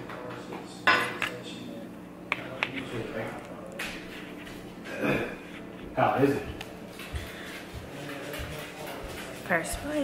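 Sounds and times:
cutlery clinking on plate: 0:00.9 - 0:01.4.

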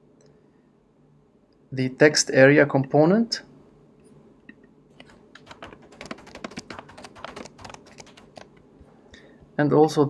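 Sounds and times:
typing on computer keyboard: 0:05.4 - 0:08.6.

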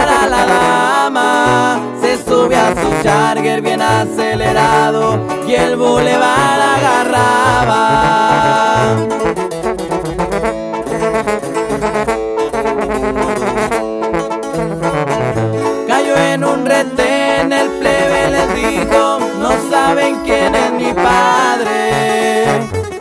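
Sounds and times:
band playing melody over bass: 0:00.0 - 0:23.0.

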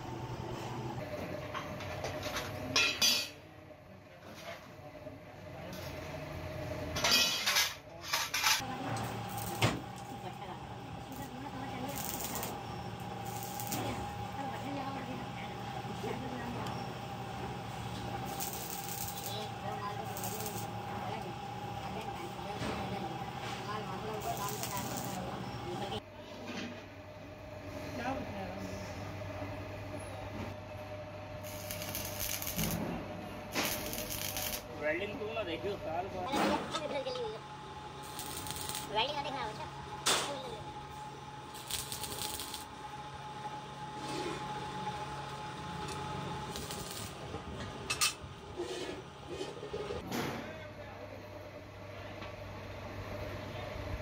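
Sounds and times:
welding arc crackling and hissing: 0:08.6 - 0:26.0, 0:31.4 - 0:32.8, 0:33.5 - 0:34.8, 0:38.0 - 0:39.6, 0:41.4 - 0:42.7, 0:46.4 - 0:47.3
steady hum: 0:08.6 - 0:26.3, 0:27.0 - 0:50.0.

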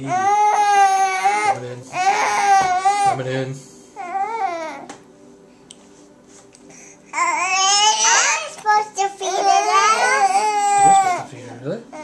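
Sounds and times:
child vocalizing: 0:07.2 - 0:11.2.

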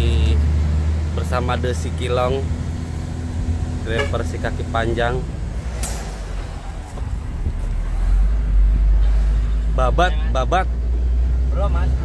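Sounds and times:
truck engine drone from cab: 0:00.0 - 0:12.0.

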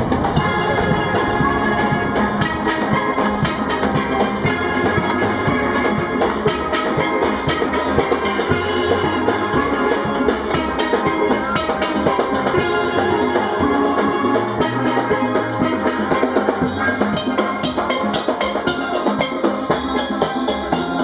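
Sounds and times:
drums steady beat: 0:00.0 - 0:21.0
steel pans playing a tune: 0:00.0 - 0:21.0.

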